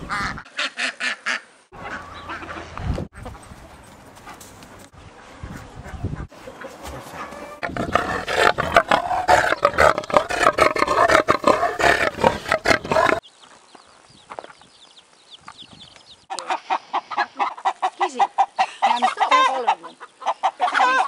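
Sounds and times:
poultry calling: 5.5s - 13.2s, 16.3s - 21.0s.

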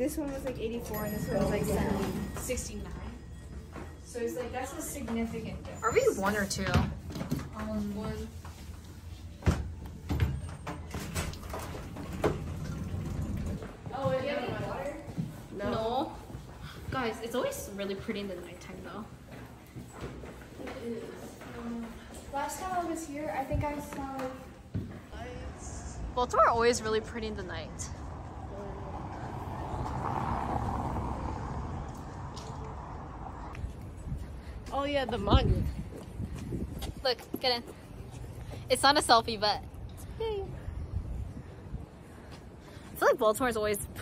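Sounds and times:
low traffic rumble: 0.0s - 44.0s
elevator running rumble: 11.6s - 14.3s
car passing: 25.1s - 36.7s.

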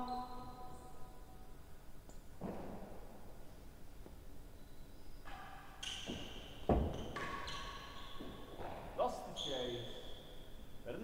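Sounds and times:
shoes squeaking on court floor: 4.5s - 10.9s.

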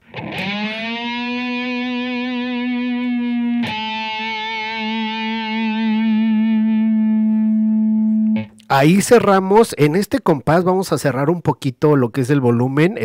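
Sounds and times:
distorted electric guitar note: 0.0s - 8.6s.

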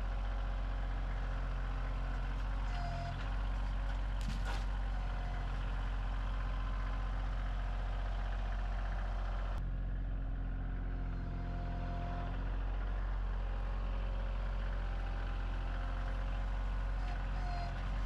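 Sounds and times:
tractor diesel engine running: 0.0s - 18.0s.

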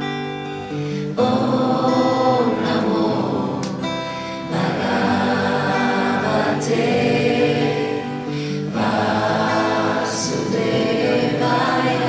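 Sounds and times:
strummed acoustic guitars: 0.0s - 12.0s
voices chanting in sung phrases: 1.1s - 12.0s.

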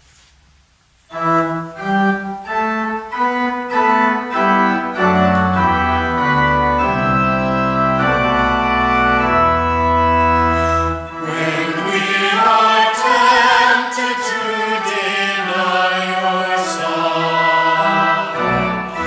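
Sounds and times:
pipe organ playing: 1.1s - 19.0s.

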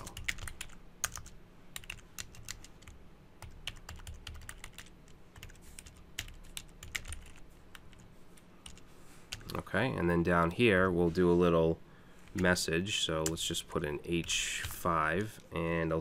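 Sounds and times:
computer keyboard typing: 0.0s - 9.6s.

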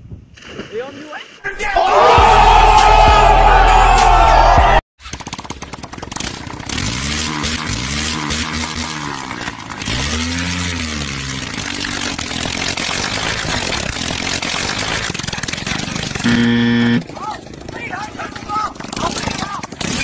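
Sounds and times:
small engine running: 5.0s - 20.0s.

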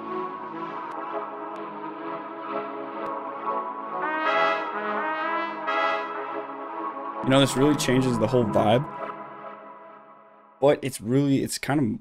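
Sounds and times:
beat with melodic parts: 0.0s - 10.0s
brassy synth chords: 0.0s - 10.6s.

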